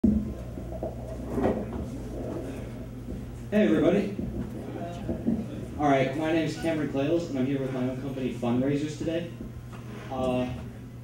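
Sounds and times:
microphone handling knocks: 0.0 - 6.4
low electrical hum: 0.0 - 11.0.

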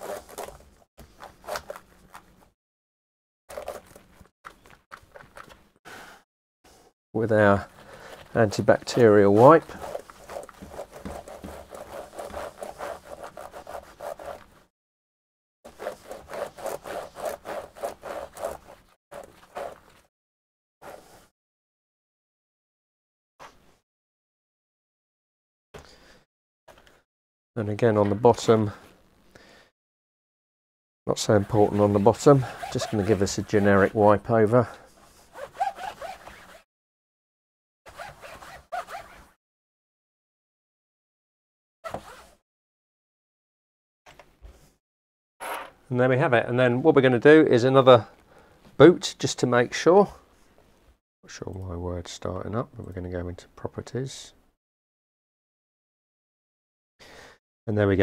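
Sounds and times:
wipe scrubbing laptop keyboard: 9.2 - 14.5, 15.7 - 19.8, 31.2 - 34.0.

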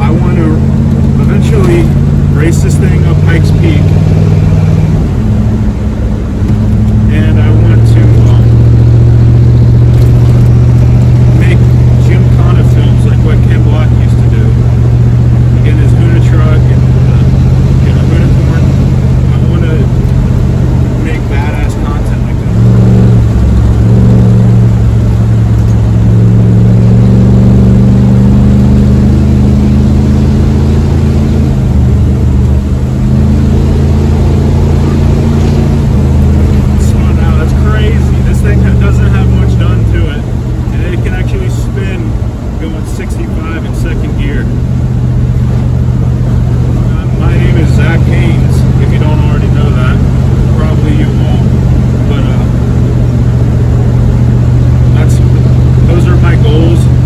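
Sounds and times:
truck engine droning: 0.0 - 57.0.

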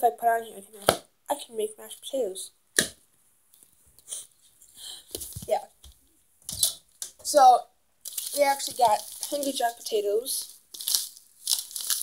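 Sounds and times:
rustling crinkling handling: 4.4 - 7.4, 8.0 - 12.0.

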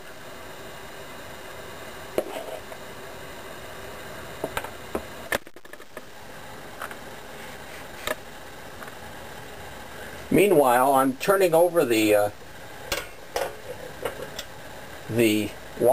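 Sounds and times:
steady background hum: 0.0 - 15.9.

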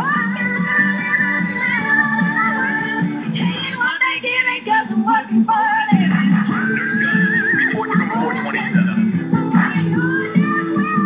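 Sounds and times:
upbeat cartoon song with singing: 0.0 - 11.0.

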